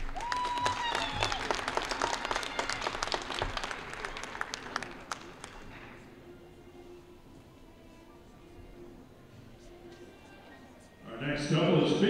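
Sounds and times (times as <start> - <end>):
short high cheer: 0.0 - 3.6
audience clapping: 0.0 - 5.8.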